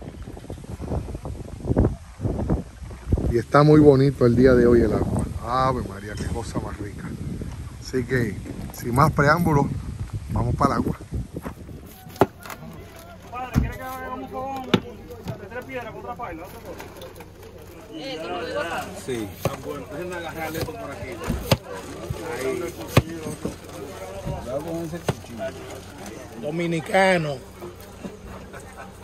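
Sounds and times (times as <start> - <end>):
people talking: 11.8 - 29.0.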